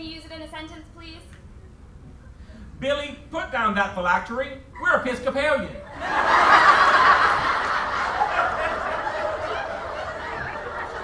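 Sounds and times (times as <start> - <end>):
audience laughing: 5.9 - 11.0.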